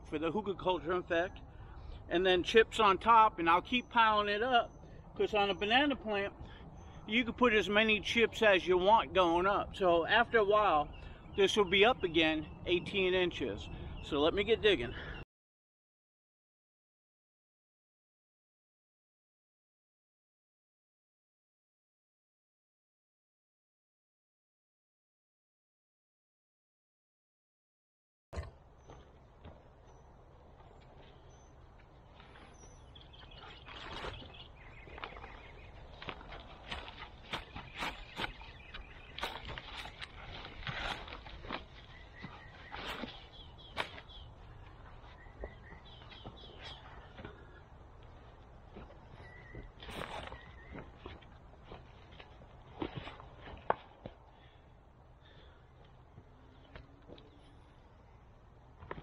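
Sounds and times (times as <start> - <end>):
footsteps on wood-chip mulch: 30.5 - 54.2.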